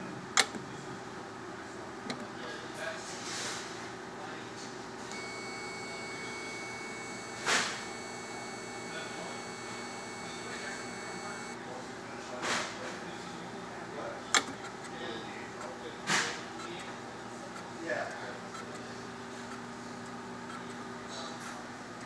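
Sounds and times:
high-pitched whine: 0:05.1 - 0:11.6
machine humming: 0:05.1 - 0:11.6.

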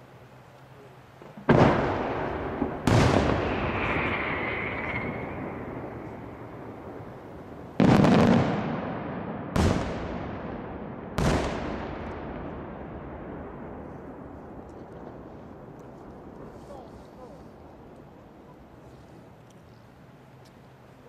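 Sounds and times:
firework shells bursting: 0:01.2 - 0:09.0
echo of bangs: 0:01.5 - 0:14.6.

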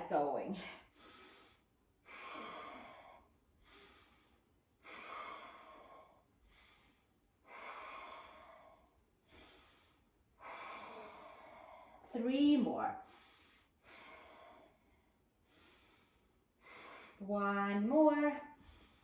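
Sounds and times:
woman breathing rhythmically: 0:00.4 - 0:12.2, 0:12.8 - 0:17.3, 0:18.4 - 0:19.0.

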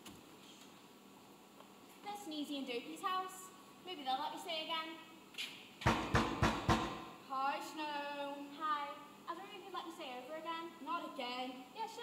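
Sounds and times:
knocking on door: 0:05.8 - 0:07.1.

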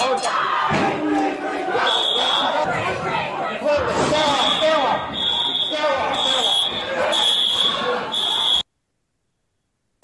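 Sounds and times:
crowd shouting: 0:00.0 - 0:08.6.

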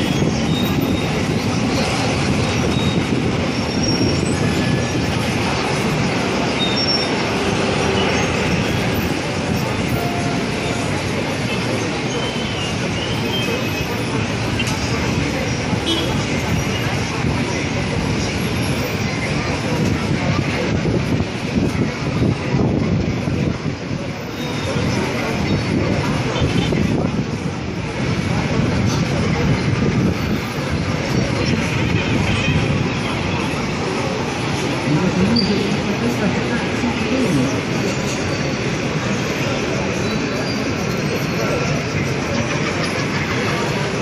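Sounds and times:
city background rumble: 0:00.0 - 0:44.0
murmur of people: 0:00.0 - 0:44.0
street traffic: 0:00.0 - 0:44.0.

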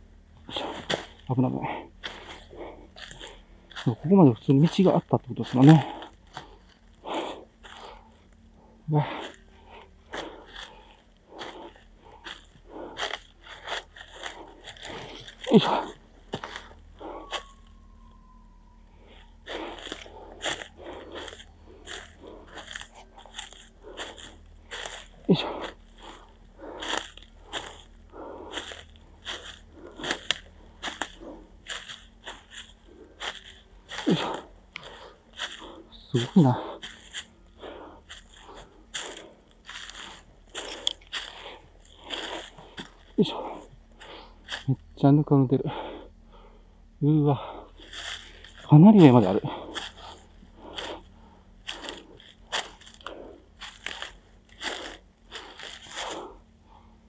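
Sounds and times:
footsteps crunching on dry leaves: 0:00.4 - 0:18.4, 0:19.0 - 0:45.0, 0:47.6 - 0:56.8.

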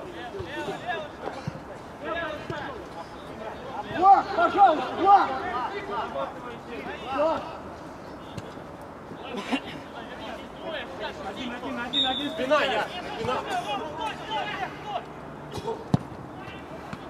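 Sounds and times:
background chatter: 0:00.0 - 0:17.0
men shouting: 0:03.8 - 0:06.3.

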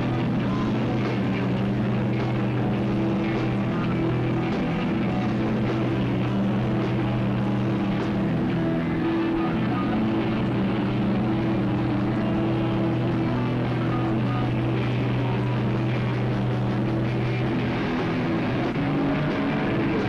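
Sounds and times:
rock band droning chord: 0:00.0 - 0:20.0.

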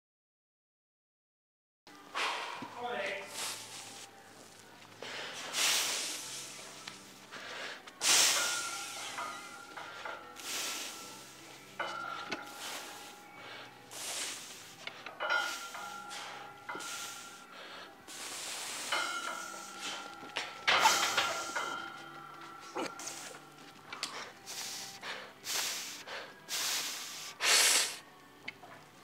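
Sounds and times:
man breathing forcefully: 0:02.1 - 0:02.7, 0:05.0 - 0:11.3, 0:12.5 - 0:21.8, 0:22.7 - 0:28.0.

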